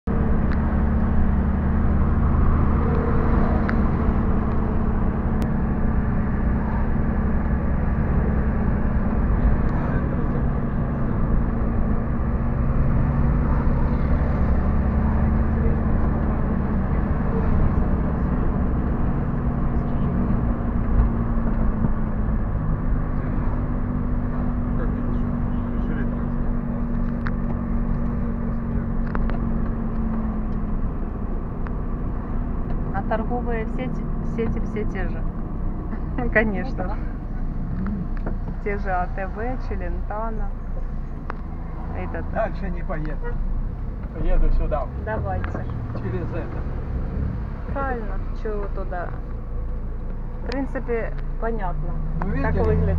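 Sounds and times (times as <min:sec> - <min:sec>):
car engine and road noise: 0:00.0 - 0:52.9.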